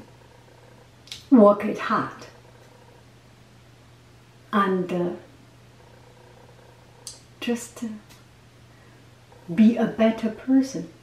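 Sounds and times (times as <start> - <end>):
steady low hum: 0.0 - 11.0
woman saying uh: 9.5 - 10.9.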